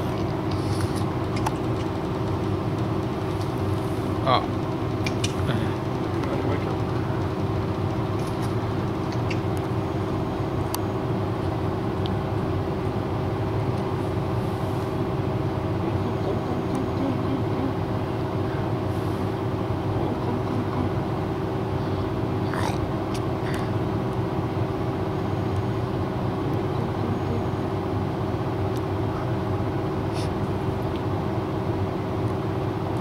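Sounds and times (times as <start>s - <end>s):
steady mechanical hum: 0.0s - 33.0s.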